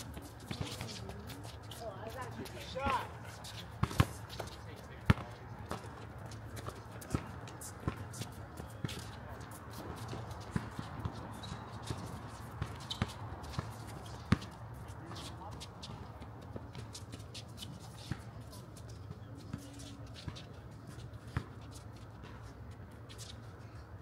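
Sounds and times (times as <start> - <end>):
footsteps shuffling on hard court: 0.0 - 23.5.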